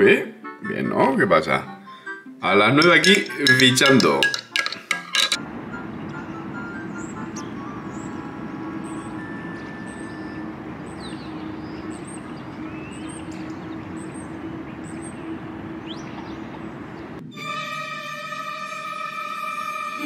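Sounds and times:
traffic hum: 0:02.8 - 0:17.3
bird chirps: 0:05.9 - 0:17.2.

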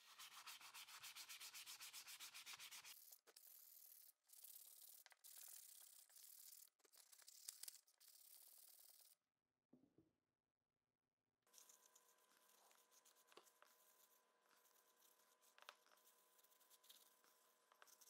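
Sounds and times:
sandpaper rubbing on wood: 0:00.0 - 0:03.2.

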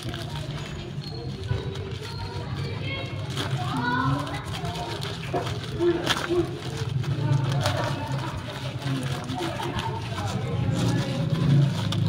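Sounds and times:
plastic pouch crinkling: 0:00.0 - 0:12.0.

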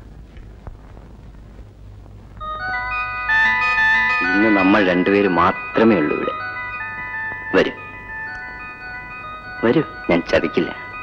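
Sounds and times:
chiming bell-like tones: 0:02.4 - 0:11.0.

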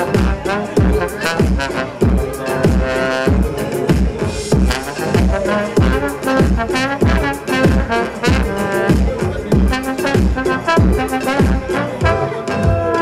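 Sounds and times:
trombone melody: 0:00.0 - 0:03.8, 0:04.6 - 0:13.0
electronic beat with bass: 0:00.0 - 0:13.0.

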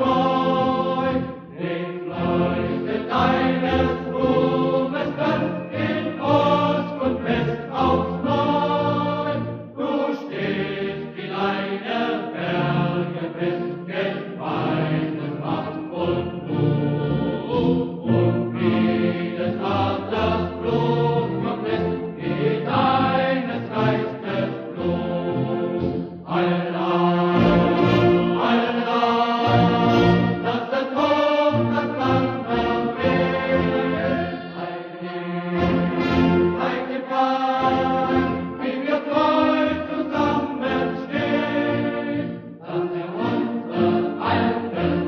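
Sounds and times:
choir singing slowly: 0:00.0 - 0:45.0.

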